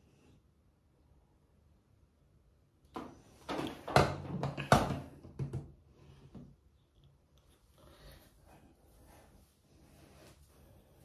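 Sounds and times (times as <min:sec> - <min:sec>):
objects knocking and clattering: 0:02.9 - 0:05.8.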